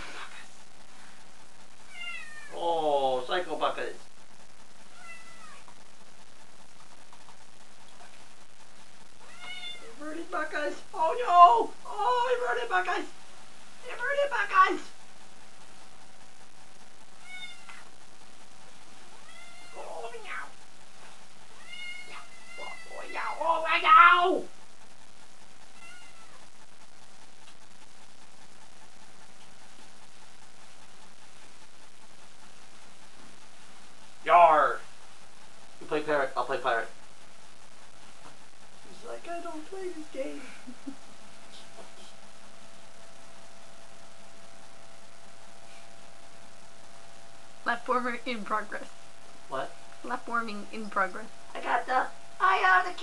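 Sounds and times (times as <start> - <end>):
cat meowing: 1.9 - 2.6, 4.9 - 5.7, 9.2 - 10.0, 17.2 - 17.9, 19.2 - 20.5, 21.6 - 23.4, 25.7 - 26.4.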